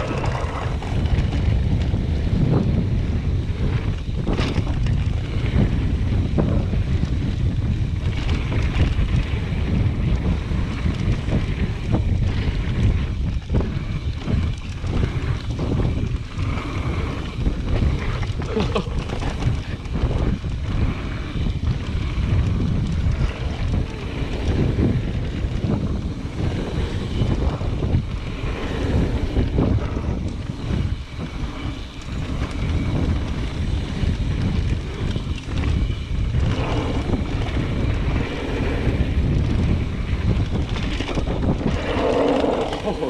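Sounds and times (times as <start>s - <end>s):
bike rattling over bumps: 0.0s - 43.0s
tyres rumbling on dirt: 0.0s - 43.0s
wind buffeting microphone: 0.0s - 43.0s.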